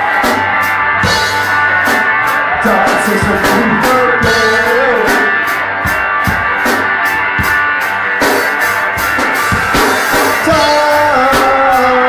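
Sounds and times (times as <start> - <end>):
drum kit steady beat: 0.0 - 12.0
electric guitars strummed: 0.0 - 12.0.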